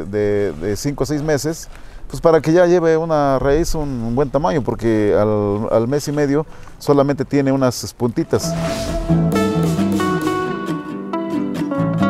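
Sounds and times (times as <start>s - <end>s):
guitar picking notes: 8.2s - 12.0s.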